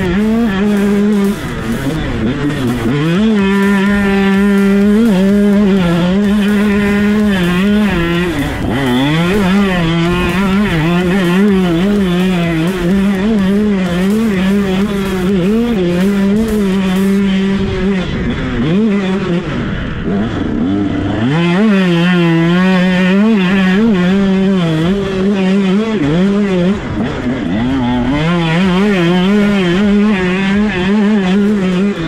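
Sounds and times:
motocross engine revving: 0:00.0 - 0:32.0.

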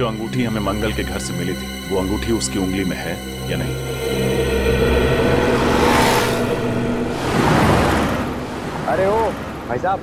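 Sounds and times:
low held tone: 0:00.0 - 0:08.9
whoosh: 0:03.5 - 0:09.7.

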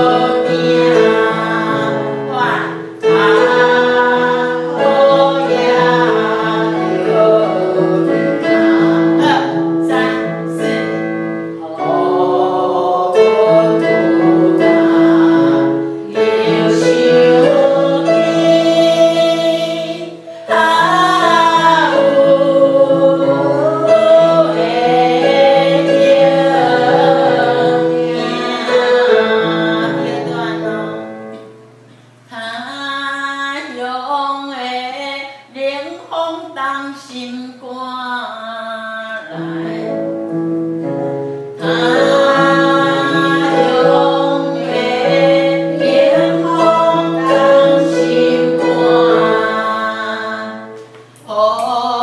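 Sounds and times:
woman singing slow melody: 0:00.0 - 0:26.0, 0:32.3 - 0:40.1, 0:41.9 - 0:52.0
instrumental backing track: 0:00.0 - 0:32.3
woman singing a slow ballad: 0:49.2 - 0:52.0.

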